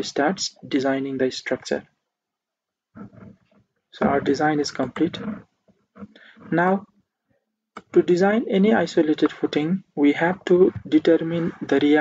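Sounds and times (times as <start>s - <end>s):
person making creaky hesitation sound: 3.0s - 6.9s.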